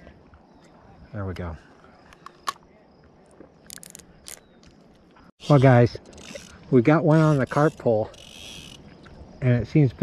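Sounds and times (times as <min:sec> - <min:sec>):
fishing reel clicking: 0:05.5 - 0:06.6, 0:07.2 - 0:08.8.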